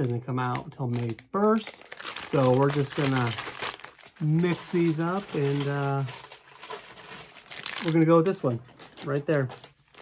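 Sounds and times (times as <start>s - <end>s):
foil bags crinkling: 0.0s - 10.0s.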